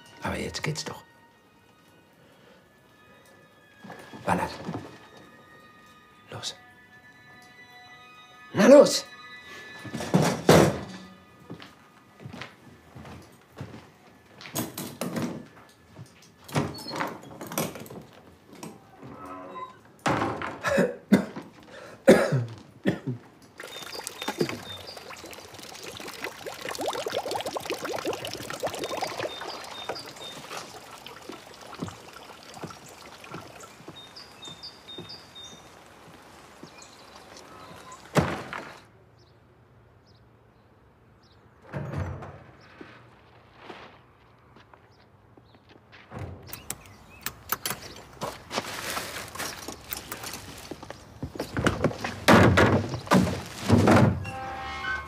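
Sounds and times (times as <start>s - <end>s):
water dripping from gutter: 23.4s - 38.4s, 46.5s - 53.6s
steady rain: 28.0s - 38.8s.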